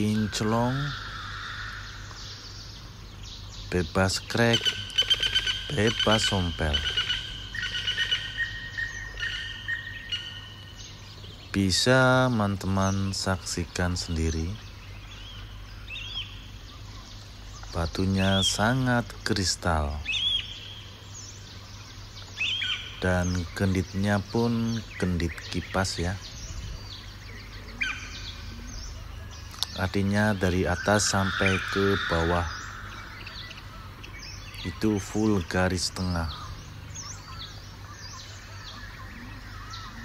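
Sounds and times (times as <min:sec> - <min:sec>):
birds chirping: 0:00.0 - 0:40.0
low steady hum: 0:00.0 - 0:40.0.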